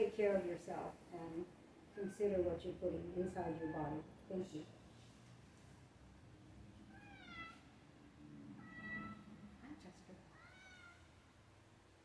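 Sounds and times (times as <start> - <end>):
cat meowing faintly: 6.9 - 7.7, 8.5 - 9.6, 10.3 - 11.2.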